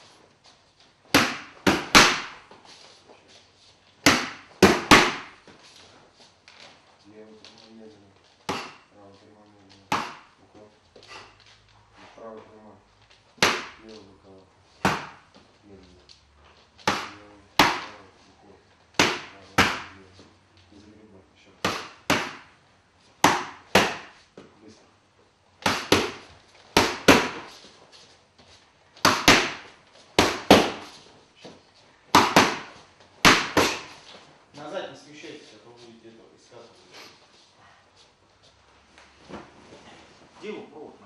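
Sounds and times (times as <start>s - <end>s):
gloves punching focus mitts: 1.0s - 2.4s, 4.0s - 5.6s, 9.8s - 10.4s, 13.3s - 13.9s, 14.8s - 15.3s, 16.8s - 18.0s, 19.0s - 20.0s, 21.6s - 22.6s, 23.2s - 24.2s, 25.6s - 27.6s, 29.0s - 31.0s, 32.1s - 34.0s.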